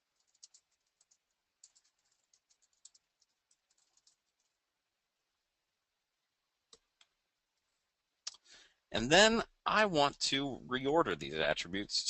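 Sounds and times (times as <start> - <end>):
faint keyboard typing: 0.0 - 4.7, 6.6 - 7.7.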